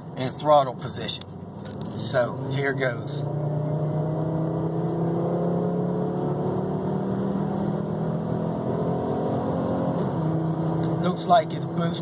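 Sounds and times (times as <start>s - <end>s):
car engine revving at full throttle: 0.2s - 12.0s.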